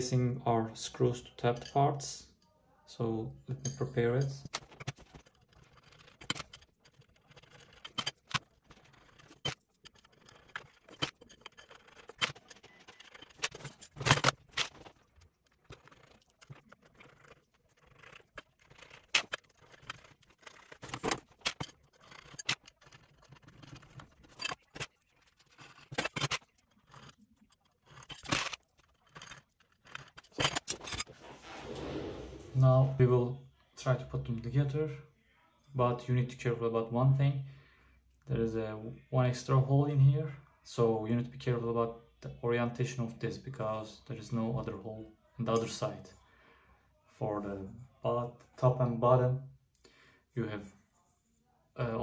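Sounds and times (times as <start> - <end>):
metal parts clicking and clinking: 3.5 - 31.1.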